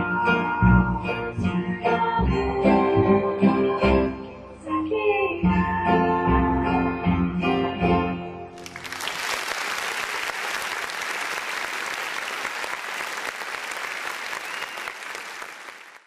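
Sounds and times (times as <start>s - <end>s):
audience applause: 8.6s - 16.0s.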